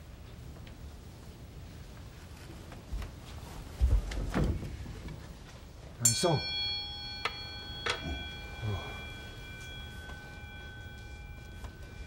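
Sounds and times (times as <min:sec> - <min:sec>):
altar bell ringing: 0:06.0 - 0:12.0.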